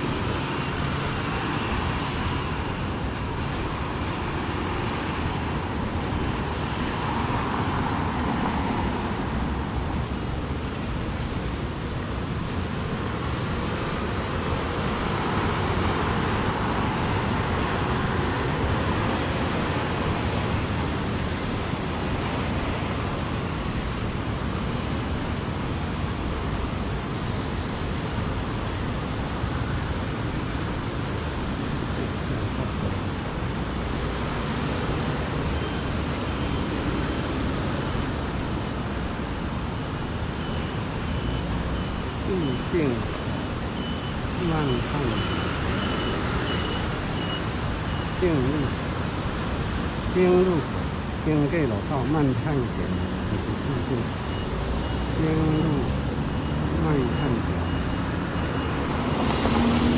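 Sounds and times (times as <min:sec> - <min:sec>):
road traffic: 0:00.0 - 0:59.9
faint high beeping: 0:40.4 - 0:48.8, 0:50.1 - 0:59.8.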